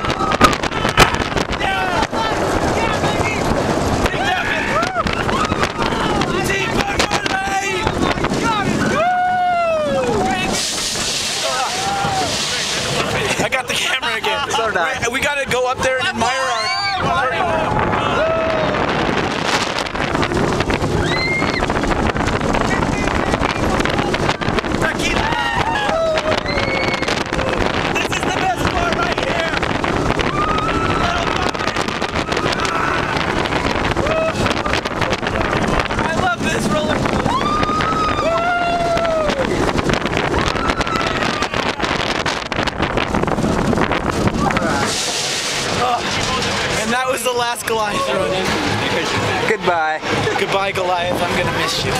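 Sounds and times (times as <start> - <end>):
roller coaster train rumbling: 0.0 - 51.9
wind buffeting microphone: 0.0 - 51.9
riders yelling: 0.8 - 10.6, 24.9 - 39.7.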